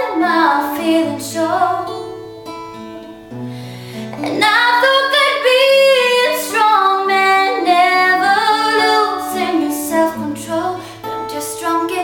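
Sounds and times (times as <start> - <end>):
woman singing: 0.0 - 2.3, 4.1 - 12.0
acoustic guitar: 0.0 - 12.0.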